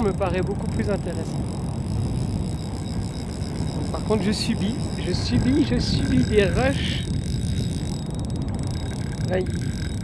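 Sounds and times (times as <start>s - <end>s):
fishing reel drag clicking: 0.0s - 10.0s
wind rumble on microphone: 0.0s - 10.0s.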